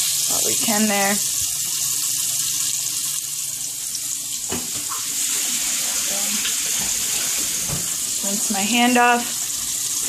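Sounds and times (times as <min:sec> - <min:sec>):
meat sizzling in a frying pan: 0:00.0 - 0:10.0
tap water running: 0:00.0 - 0:10.0.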